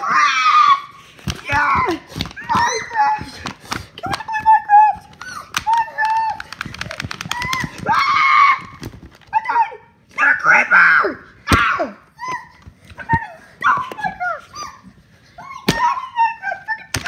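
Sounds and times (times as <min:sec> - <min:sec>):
high-pitched cartoon voices yelling: 0:00.0 - 0:06.6, 0:07.2 - 0:14.8.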